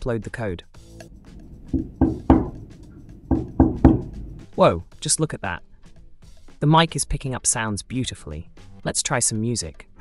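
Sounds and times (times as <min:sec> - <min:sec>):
knuckles knocking on tabletop: 0:01.1 - 0:04.4.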